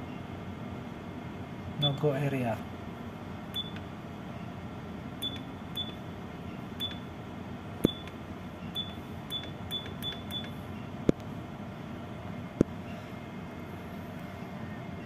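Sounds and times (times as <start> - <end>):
steady background hum: 0.0 - 15.0
keypress beeps with clicks: 3.6 - 3.8, 5.2 - 6.0, 6.8 - 7.0, 7.8 - 8.2, 8.8 - 10.6.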